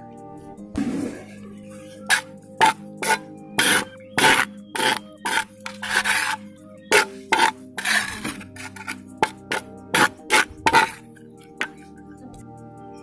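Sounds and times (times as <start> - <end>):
trowel scraping wet cement: 0.8 - 11.9.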